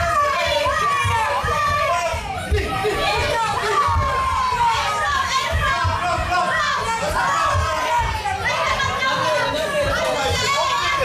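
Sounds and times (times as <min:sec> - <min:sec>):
spectators shouting and cheering: 0:00.0 - 0:11.0.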